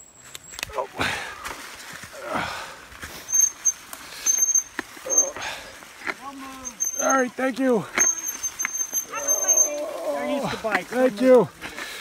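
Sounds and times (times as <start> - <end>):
brakes squealing: 0.1 - 12.0
bike rattling over bumps: 1.0 - 12.0.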